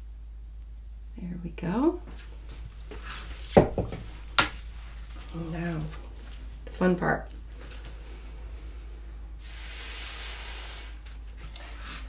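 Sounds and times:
tool knocking on table: 3.6s - 4.0s.

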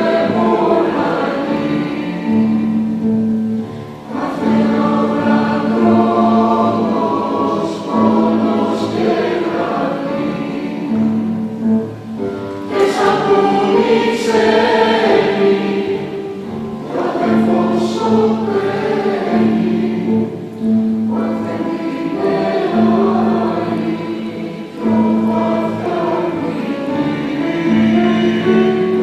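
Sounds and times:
mixed choir singing: 0.0s - 29.0s.

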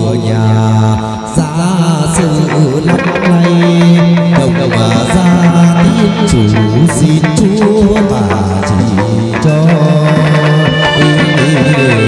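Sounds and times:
lute accompaniment: 0.0s - 12.0s.

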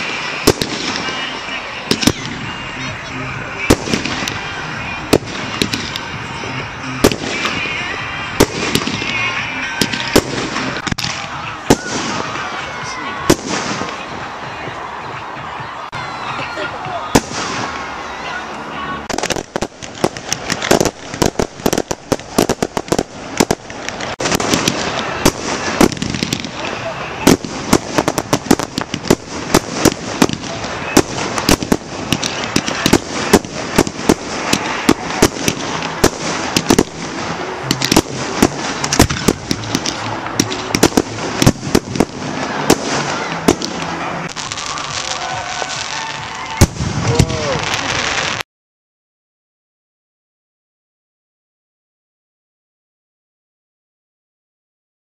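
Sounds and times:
fireworks bursting: 0.0s - 48.4s.

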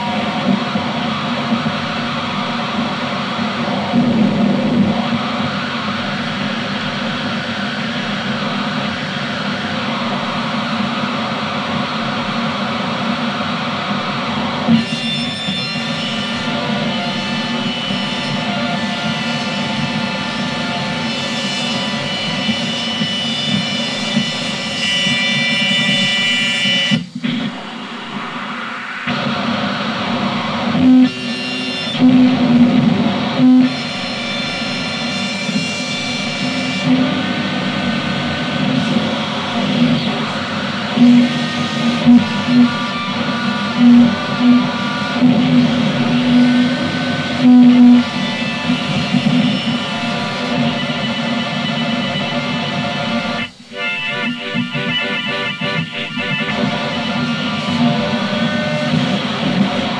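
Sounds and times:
distorted noise wall: 0.0s - 59.9s.

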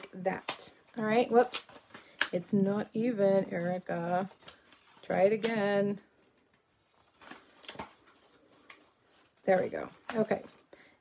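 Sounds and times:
paper rustling and tapping: 6.5s - 8.9s, 9.5s - 10.6s.

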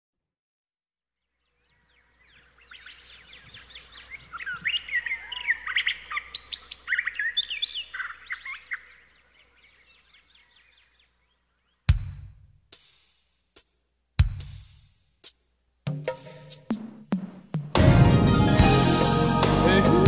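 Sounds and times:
birds chirping: 1.3s - 11.9s
music: 11.9s - 20.0s
loud low hit: 17.8s - 19.6s.

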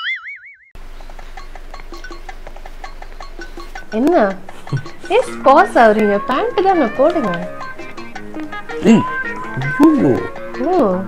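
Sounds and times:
cartoon boing sound effect: 0.0s - 0.7s, 8.8s - 10.3s
soft light background music: 1.3s - 11.0s.

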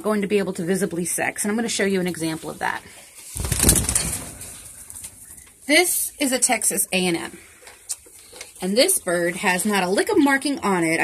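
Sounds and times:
rustling and scuffling: 2.2s - 5.6s.

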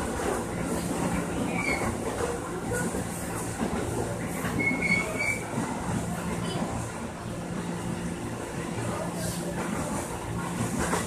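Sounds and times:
train car rumble and hum: 0.0s - 11.0s
high-pitched wheel squeals: 4.6s - 5.5s.

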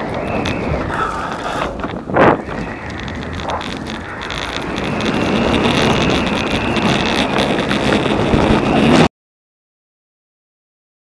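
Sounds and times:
wind buffeting microphone: 0.0s - 9.1s.

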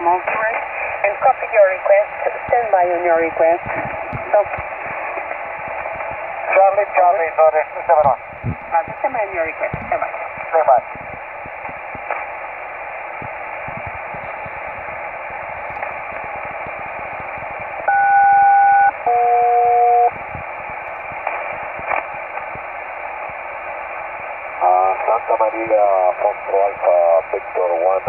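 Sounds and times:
radio receiver hiss and static: 0.0s - 28.0s
two-tone selective call signal: 14.1s - 14.8s, 17.8s - 20.2s.

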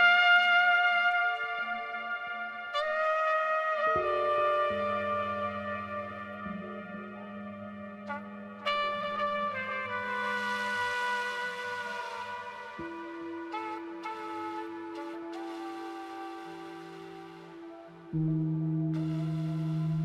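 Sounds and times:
trumpet long held notes: 0.0s - 18.4s, 19.0s - 20.0s.

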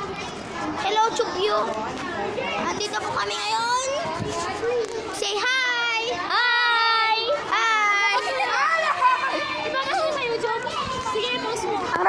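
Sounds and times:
children calling out greetings: 0.0s - 12.0s
children chattering: 0.0s - 12.0s.

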